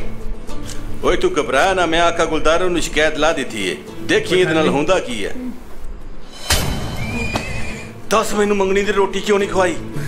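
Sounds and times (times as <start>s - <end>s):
faint background music: 0.0s - 10.0s
sharp hit: 6.2s - 8.0s.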